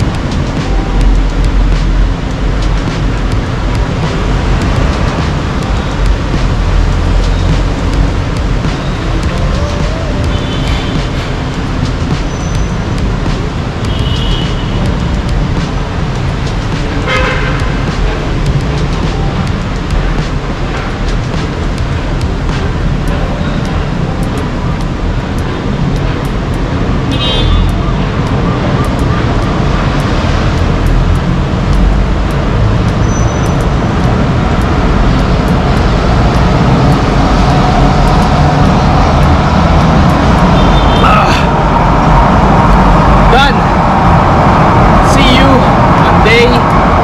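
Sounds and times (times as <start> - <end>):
road traffic rumble: 0.0 - 47.0.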